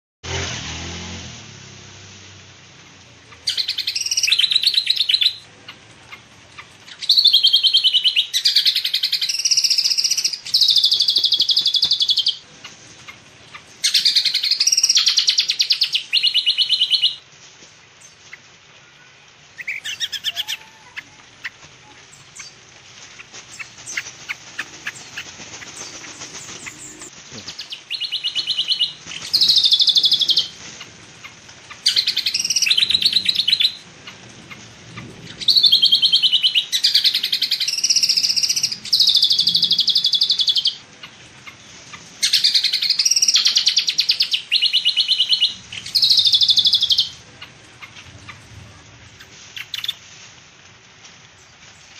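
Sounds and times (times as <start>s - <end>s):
songbird buzzy trilling calls: 3.3s - 17.2s, 19.5s - 50.0s.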